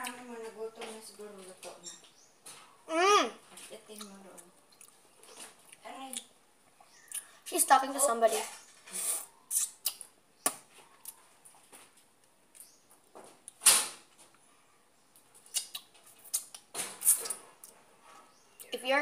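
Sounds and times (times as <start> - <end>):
lip smacks: 9.1 - 11.2, 15.2 - 17.8
chewing clicks: 15.2 - 17.8.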